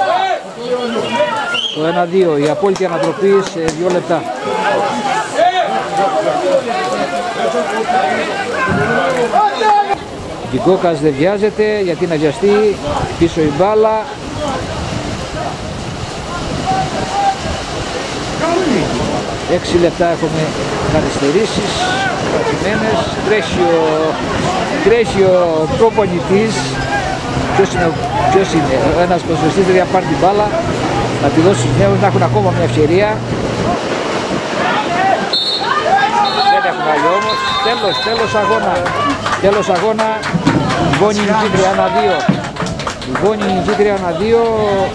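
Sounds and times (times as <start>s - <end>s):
men talking and calling out: 0.0s - 44.9s
wind on microphone: 10.0s - 36.0s, 40.2s - 44.9s.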